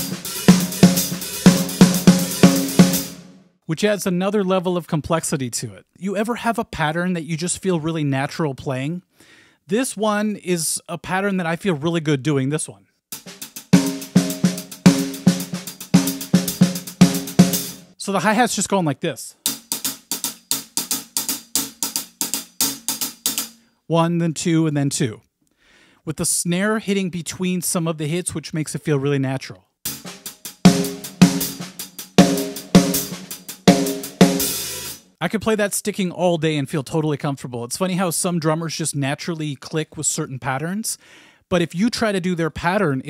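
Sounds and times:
hi-hat strokes: 0.0s - 3.2s, 13.2s - 17.9s, 29.9s - 35.1s
snare drum hits: 29.9s - 35.0s.

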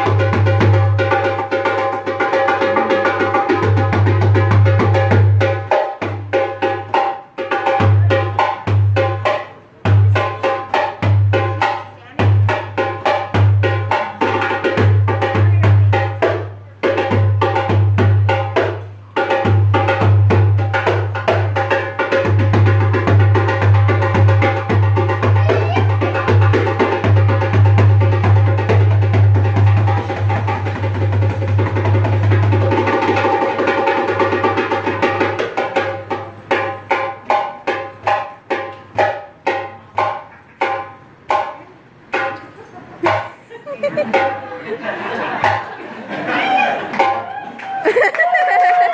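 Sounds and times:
hand drum solo: 0.0s - 42.4s.

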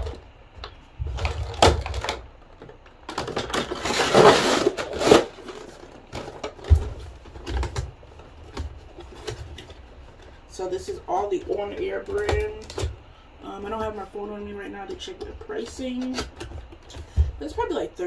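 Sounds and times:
cardboard scraping rustle: 3.5s - 7.4s
person speaking: 10.4s - 18.0s.

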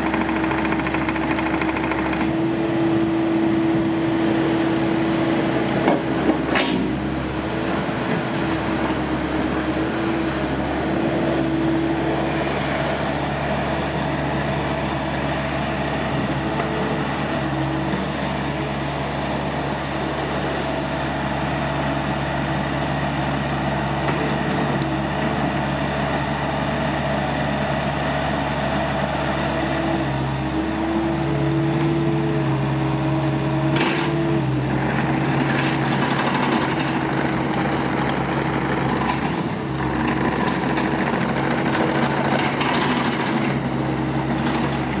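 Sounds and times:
excavator diesel engine running: 0.0s - 45.0s.

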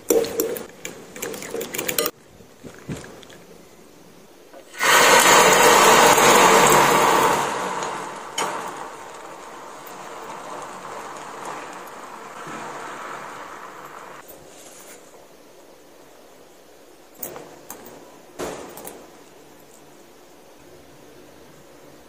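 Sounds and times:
egg sizzling on hot griddle: 4.8s - 14.2s.

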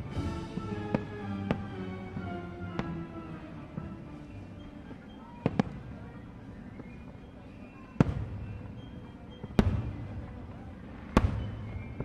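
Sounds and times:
fireworks bursting: 0.0s - 12.0s.

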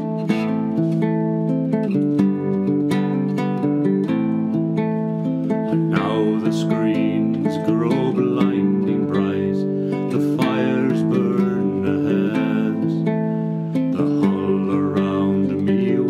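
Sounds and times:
classical guitar playing chords: 0.0s - 16.0s.

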